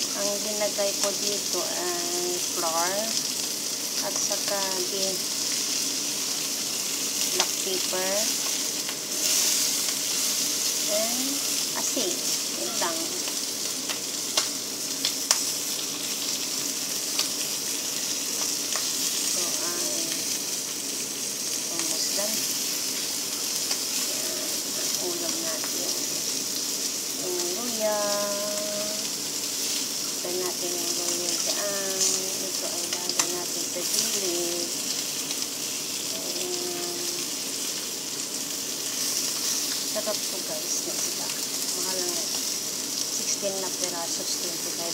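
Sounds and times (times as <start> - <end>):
fish sizzling in hot oil: 0.0 - 44.9.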